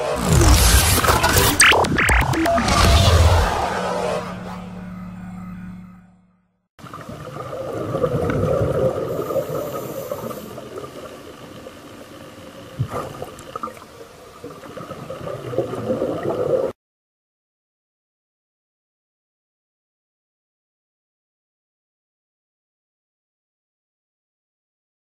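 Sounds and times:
music jingle: 0:00.2 - 0:06.4
exhaled bubbles underwater: 0:06.8 - 0:11.5, 0:12.7 - 0:16.7.

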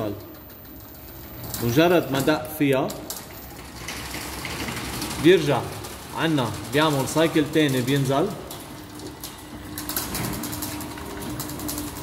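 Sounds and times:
garage door opener motor humming: 0:00.0 - 0:12.0.

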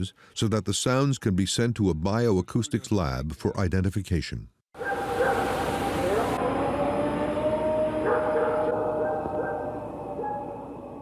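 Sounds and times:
long wavering howl: 0:04.8 - 0:11.0.

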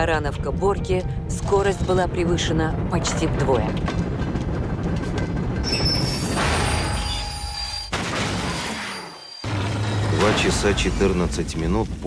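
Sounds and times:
low rumble: 0:00.0 - 0:07.0
train crash impact: 0:02.8 - 0:11.2.

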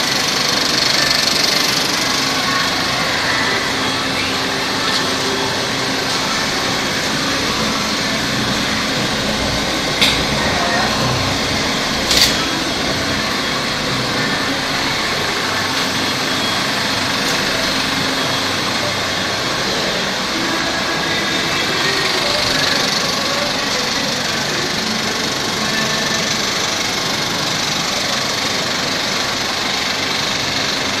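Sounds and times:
reel projector whirring: 0:00.0 - 0:31.0.

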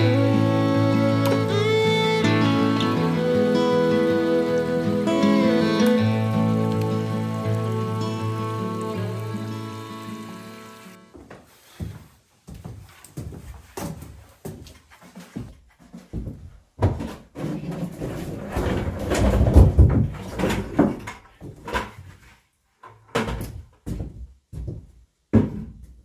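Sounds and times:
footsteps on plank floor: 0:10.5 - 0:18.6, 0:19.7 - 0:22.4, 0:23.2 - 0:26.0.

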